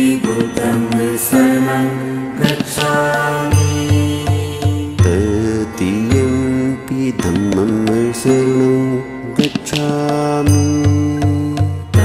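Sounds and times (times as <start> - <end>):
devotional chanted singing: 0.0 - 12.0
instrumental accompaniment: 0.0 - 12.0
low drone: 0.0 - 12.0.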